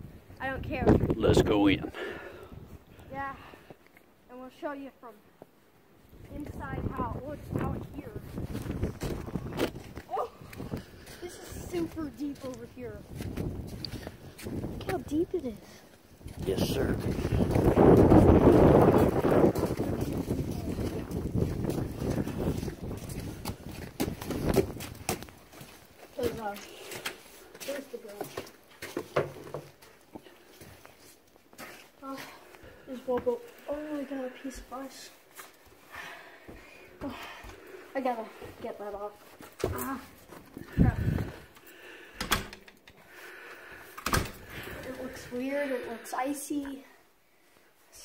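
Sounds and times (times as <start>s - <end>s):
footsteps crunching through snow: 8.1s - 15.1s, 16.2s - 29.0s
wooden door shutting with latch: 42.2s - 42.7s, 44.0s - 44.4s
door handling noise: 42.2s - 43.0s, 44.0s - 44.4s.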